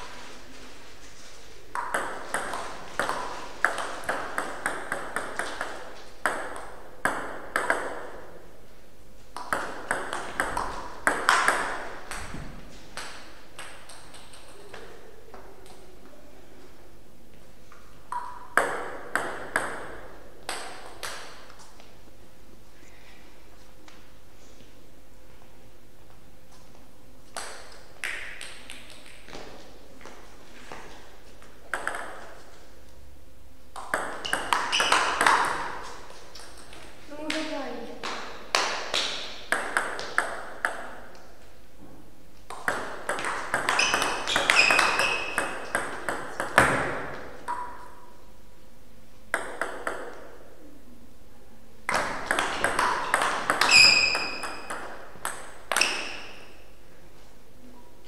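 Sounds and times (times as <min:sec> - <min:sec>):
table tennis ball clicks: 0:31.7 - 0:32.2, 0:33.8 - 0:35.8.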